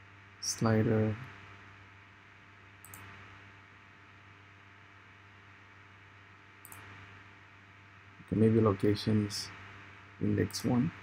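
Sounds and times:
steady low hum: 0.0 - 11.0
computer mouse click: 2.8 - 3.2, 6.6 - 7.0.

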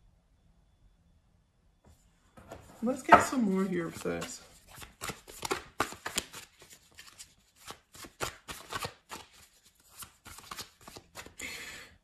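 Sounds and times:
cards being shuffled: 2.8 - 11.4.

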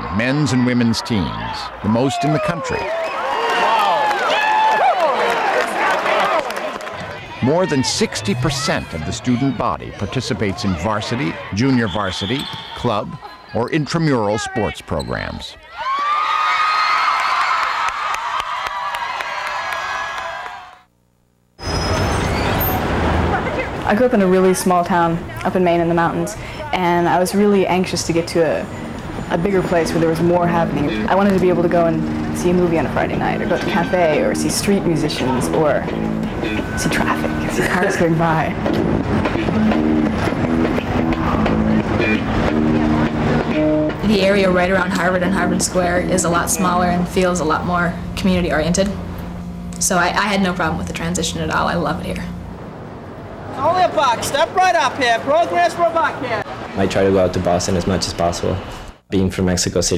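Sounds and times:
crowd cheering and shouting: 0.0 - 20.9, 28.9 - 43.6
murmur of voices: 5.8 - 15.8
held pitched tones: 7.2 - 15.6, 26.8 - 56.4
street traffic rumble: 21.6 - 59.0.

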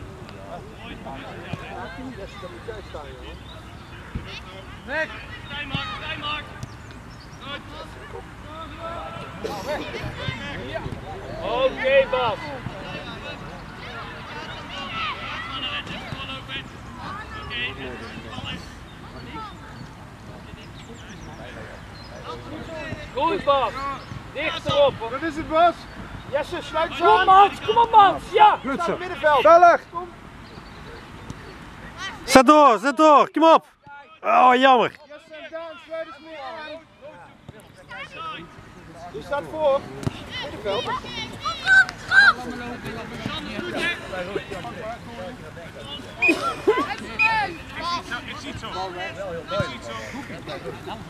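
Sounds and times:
children calling and shouting: 7.4 - 51.0.

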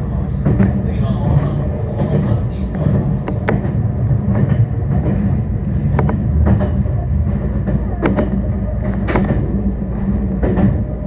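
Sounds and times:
train rumbling on rails: 0.0 - 11.0
sharp rail clicks: 0.4 - 11.0.

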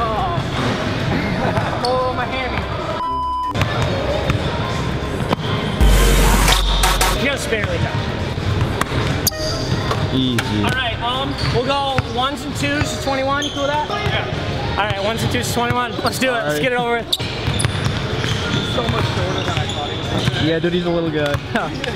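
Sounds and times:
scattered voices: 3.6 - 8.6
deep boom: 5.8 - 7.5
background music: 5.8 - 8.4.

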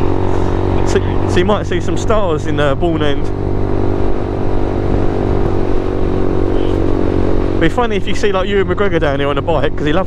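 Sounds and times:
motorcycle engine droning: 0.0 - 10.0
wind and road noise: 0.0 - 10.0.

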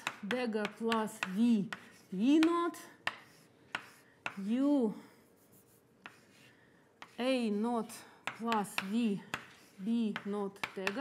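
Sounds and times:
chalk tapping against a board: 0.0 - 4.5, 5.4 - 7.3, 8.2 - 11.0
chalk writing on a blackboard: 0.0 - 7.6, 8.2 - 11.0.

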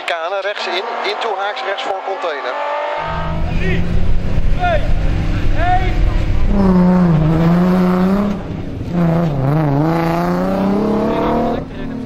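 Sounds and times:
car engine working hard: 3.0 - 12.0.

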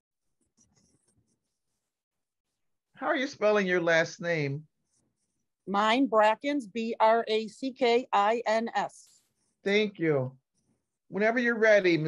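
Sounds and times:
faint soft scratching: 0.3 - 2.6, 4.7 - 5.6, 8.8 - 11.1.

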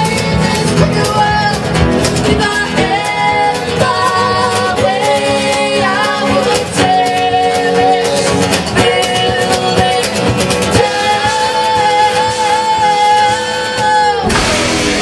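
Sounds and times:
drums: 0.0 - 15.0
strummed acoustic guitars: 0.0 - 15.0
upright bass: 0.0 - 15.0
woman singing: 0.0 - 15.0.

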